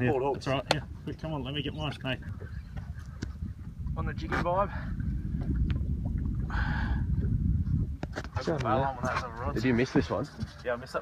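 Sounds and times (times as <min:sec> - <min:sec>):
wind and water rumble: 0:00.0 - 0:11.0.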